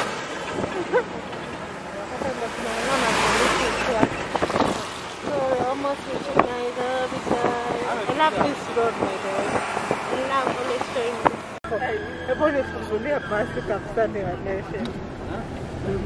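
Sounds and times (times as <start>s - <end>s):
road and wind noise: 0.0s - 16.0s.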